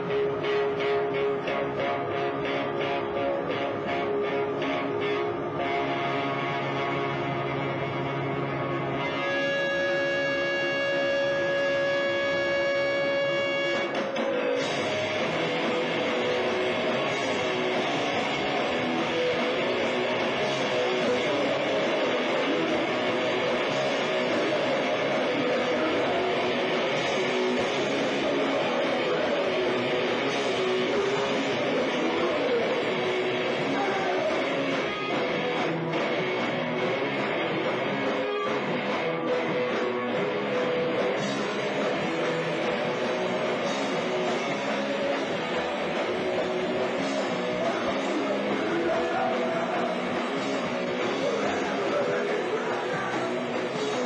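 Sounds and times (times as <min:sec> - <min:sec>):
distorted electric guitars: 0:00.0 - 0:54.0
drums: 0:00.0 - 0:54.0.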